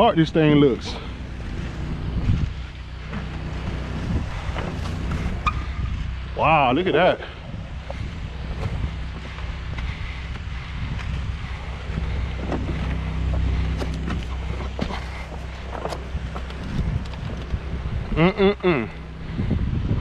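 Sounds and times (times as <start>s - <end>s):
wind rumbling on microphone: 0.0s - 20.0s.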